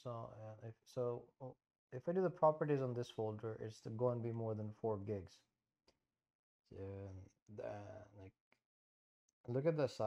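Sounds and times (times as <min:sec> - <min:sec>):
man speaking: 0:00.0 - 0:01.4, 0:02.0 - 0:05.4, 0:06.8 - 0:08.3, 0:09.5 - 0:10.0.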